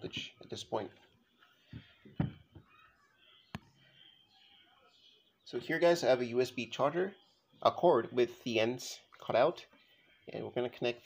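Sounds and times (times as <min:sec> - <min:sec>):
dull knock on workbench: 0:01.7 - 0:02.6.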